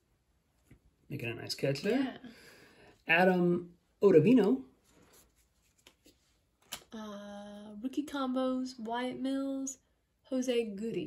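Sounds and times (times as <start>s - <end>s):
cards sliding: 4.9s - 6.9s
soft card clicks: 5.6s - 6.9s
card snapping: 6.6s - 6.9s.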